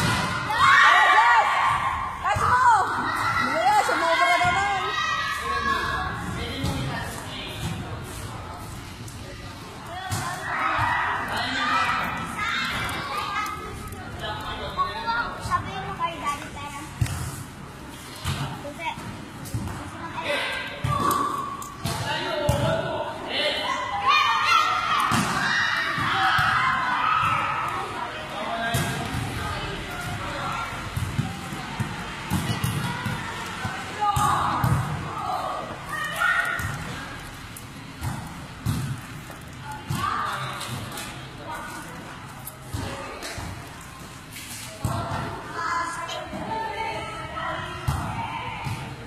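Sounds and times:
volleyball thumping: 30.8 - 35.1, 37.9 - 41.0.

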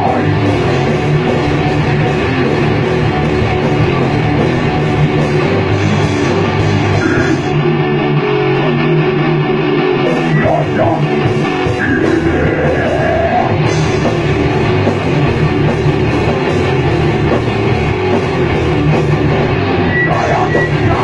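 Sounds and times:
bass guitar: 0.0 - 21.0
distorted electric guitars: 0.0 - 21.0
drum kit: 0.0 - 21.0.

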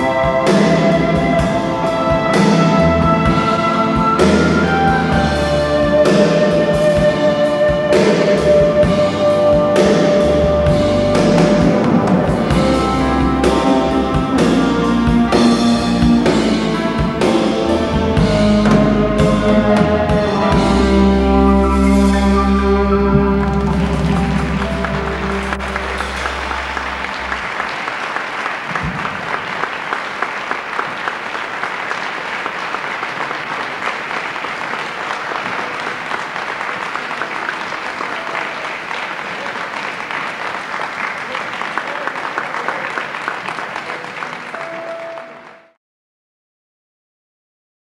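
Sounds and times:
band final chord ringing: 18.4 - 27.6
audience applauding: 18.6 - 45.8.

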